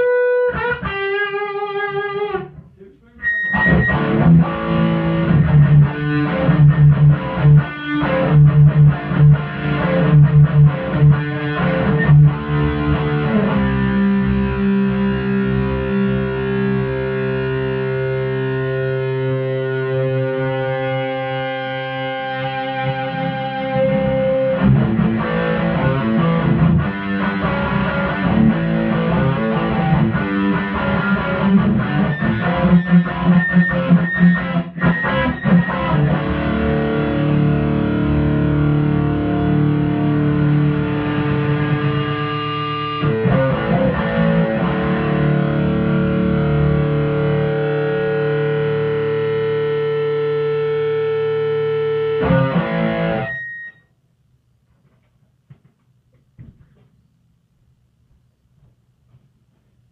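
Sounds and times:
distorted electric guitar: 0.0 - 53.8.

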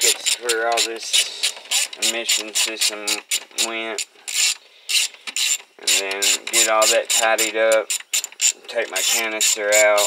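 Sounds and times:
ratcheting wrench clicking: 0.0 - 10.0.

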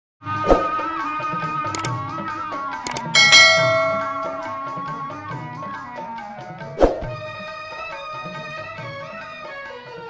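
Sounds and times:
mouse click: 2.9 - 3.1
bright bell chime: 2.9 - 5.2.

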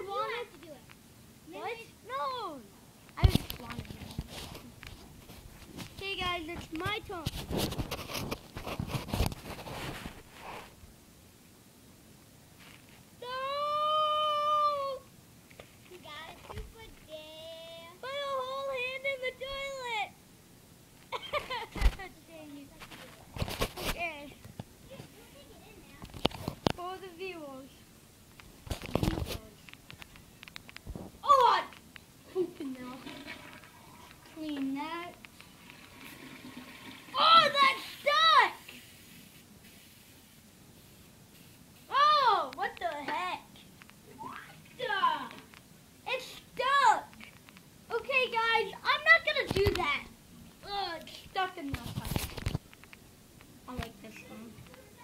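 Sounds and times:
child crying: 13.2 - 15.1.

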